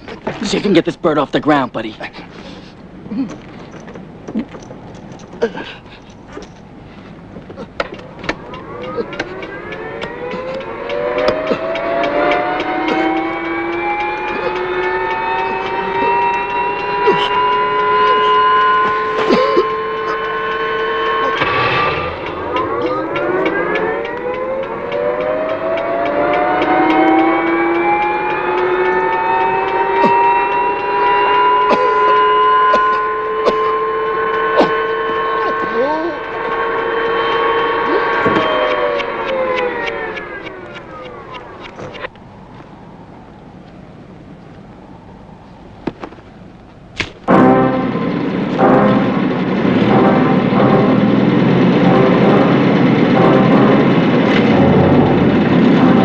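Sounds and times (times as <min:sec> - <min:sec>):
fast even ticking: 0:00.0 - 0:42.2
helicopter turbine whine: 0:00.0 - 0:56.0.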